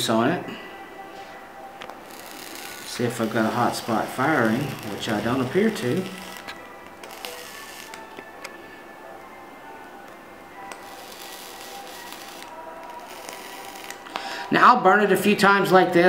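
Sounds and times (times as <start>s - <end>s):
faint background music: 0.0s - 16.0s
atomizer coil sizzling: 1.8s - 8.5s, 10.6s - 14.6s.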